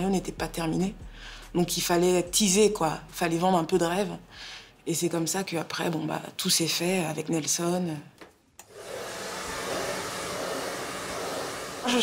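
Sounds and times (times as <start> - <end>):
hair dryer running: 8.6 - 12.0.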